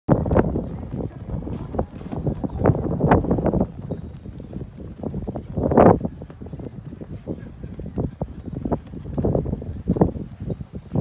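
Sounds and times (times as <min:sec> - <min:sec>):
wind buffeting microphone: 0:00.1 - 0:11.0.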